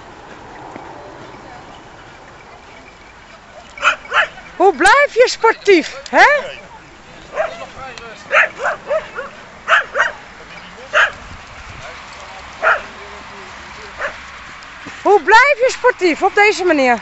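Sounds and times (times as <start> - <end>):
dogs barking and yipping: 0.3 - 11.3, 12.0 - 13.1, 13.9 - 14.4.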